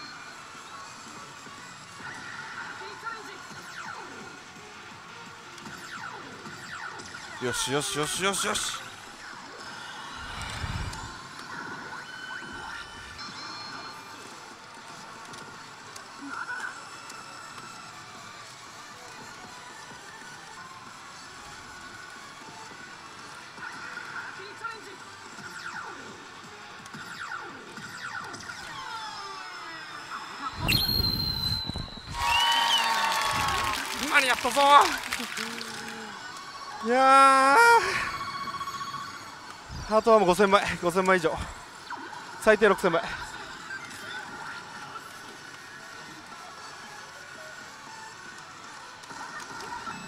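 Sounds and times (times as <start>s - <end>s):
electronic game music and effects: 0.0s - 24.4s, 25.0s - 50.0s
slot machine sweeping effects: 37.8s - 40.5s.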